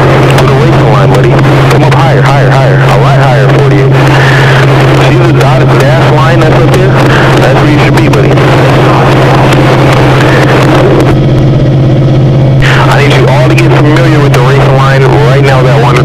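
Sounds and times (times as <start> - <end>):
race car engine at high revs: 0.0 - 16.0.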